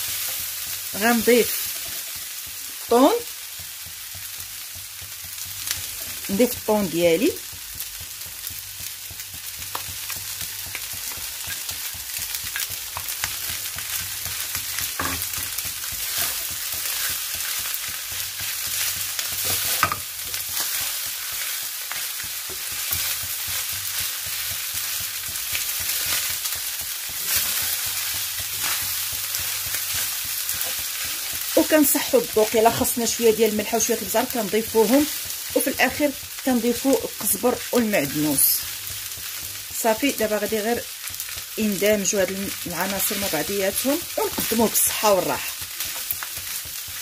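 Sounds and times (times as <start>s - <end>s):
food sizzling in a frying pan: 0.0s - 47.0s.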